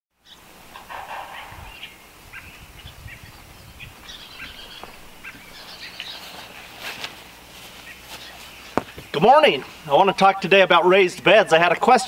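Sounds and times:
birds chirping: 0.2s - 12.0s
steady background noise: 0.2s - 12.0s.

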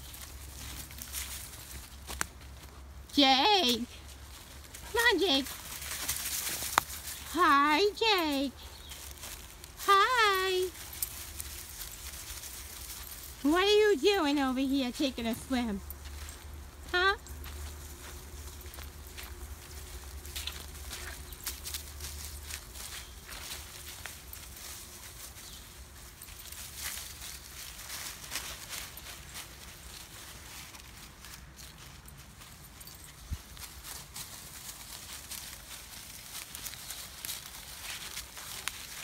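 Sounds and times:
dogs running through leaves: 0.0s - 39.0s
footsteps through dry leaves: 0.0s - 39.0s.

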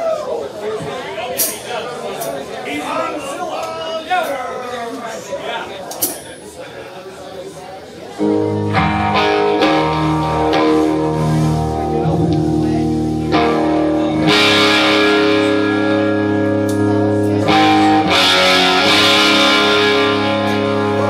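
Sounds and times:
electric guitars and bass chords: 8.2s - 21.0s.

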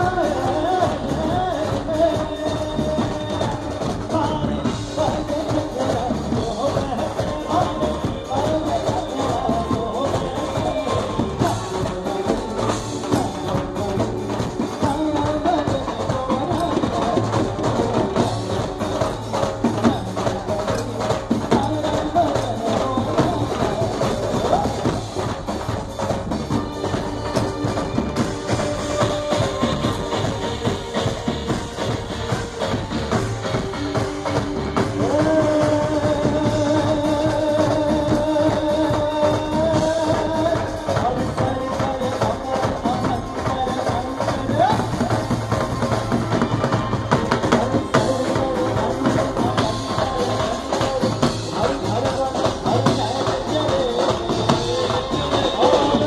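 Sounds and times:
dhol and drum groove: 0.0s - 56.0s.

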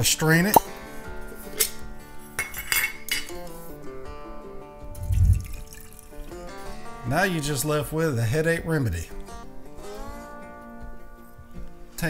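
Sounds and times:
background music: 0.0s - 12.0s
tea pouring into mug: 4.9s - 6.4s.

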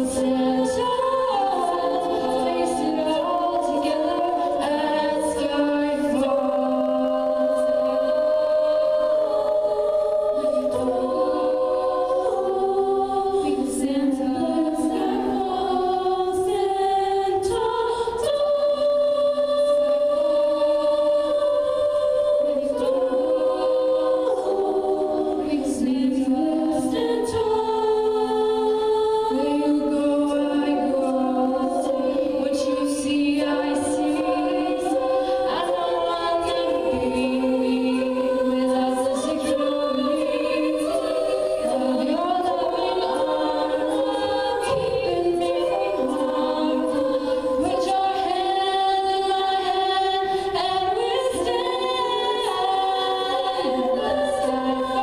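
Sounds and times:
a cappella ensemble singing in harmony: 0.0s - 55.0s.

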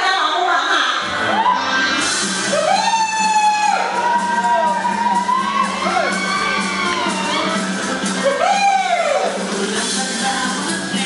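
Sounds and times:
music: 0.0s - 11.0s
people cheering: 1.1s - 9.6s
high gliding whooping cries: 2.5s - 9.4s.

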